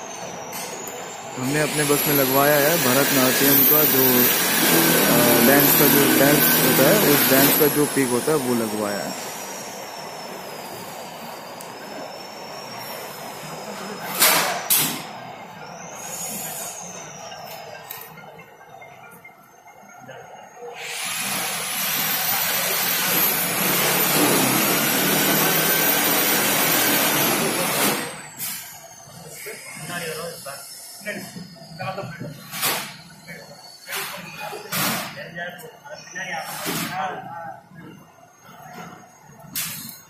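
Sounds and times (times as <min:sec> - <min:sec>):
spray gun hissing: 0:01.6 - 0:08.7.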